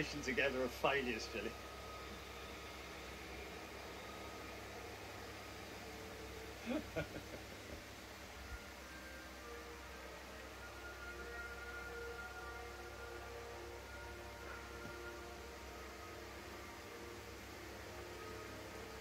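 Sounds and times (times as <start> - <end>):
faint steady tones: 0.0 - 19.0
hiss and hum: 0.0 - 19.0.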